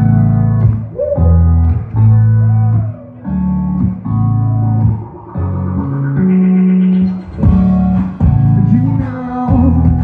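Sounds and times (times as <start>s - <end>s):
electric guitar: 0.0s - 10.0s
live band playing: 0.6s - 10.0s.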